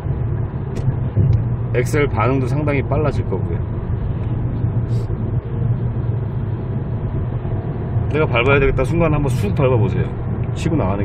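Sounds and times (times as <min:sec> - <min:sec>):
engine and road noise hum: 0:00.0 - 0:11.0.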